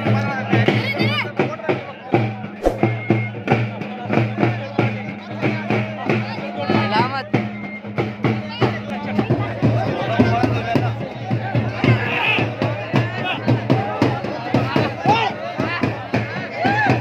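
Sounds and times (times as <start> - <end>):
crowd voices: 0.0 - 17.0.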